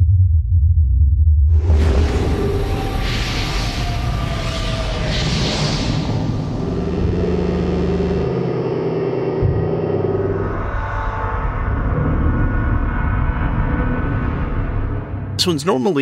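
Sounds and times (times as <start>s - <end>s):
deep sub-bass rumble: 0.0s - 3.4s, 5.9s - 8.7s
hissing cosmic texture: 1.8s - 9.3s
sustained synth tones: 5.3s - 15.2s.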